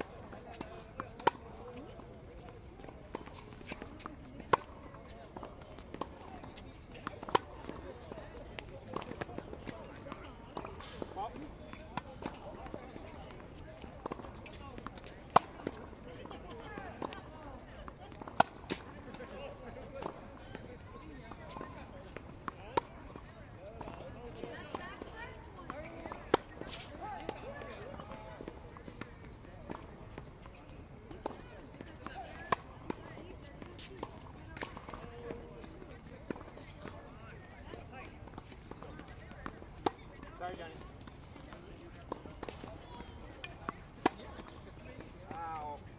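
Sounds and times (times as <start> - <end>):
faint voices murmuring: 0.0 - 45.9
tennis balls struck by racquets: 0.1 - 20.6, 23.8 - 29.1, 29.7 - 37.0, 37.8 - 45.8.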